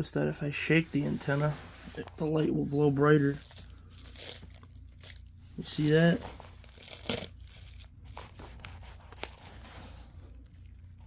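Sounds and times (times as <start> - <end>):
foil plate crinkling: 3.2 - 11.0.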